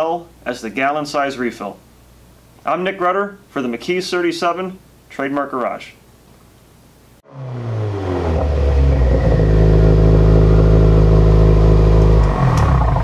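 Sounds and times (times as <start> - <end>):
car engine running: 7.3 - 13.0.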